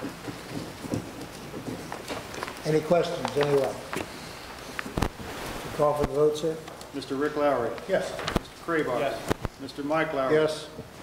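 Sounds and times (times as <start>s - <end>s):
steady hiss: 1.9s - 11.0s.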